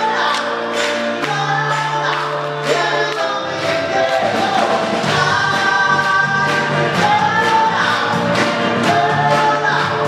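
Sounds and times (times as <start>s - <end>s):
man singing: 0.0s - 10.0s
orchestra and band playing pop-rock: 0.0s - 10.0s.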